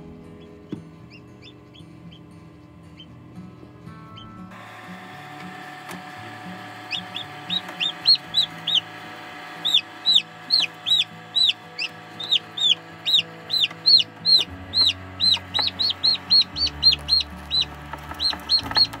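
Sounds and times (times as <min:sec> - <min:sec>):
chicks peeping: 0:00.1 - 0:05.1, 0:05.8 - 0:19.0.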